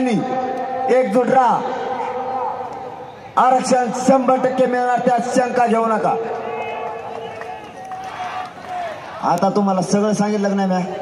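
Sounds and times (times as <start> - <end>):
man's voice over loudspeaker: 0.0 - 7.9, 9.2 - 11.0
loudspeaker echo: 0.0 - 8.0, 8.7 - 11.0.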